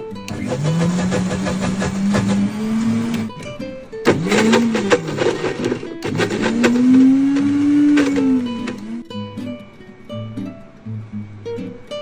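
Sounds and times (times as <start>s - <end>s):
blender motor whining: 0.3s - 3.5s, 4.1s - 9.0s.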